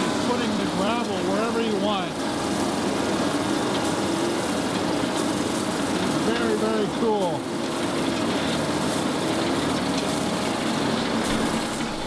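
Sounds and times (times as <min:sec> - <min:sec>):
conveyor belt throwing gravel: 0:00.0 - 0:12.0
truck engine hum: 0:09.4 - 0:12.0.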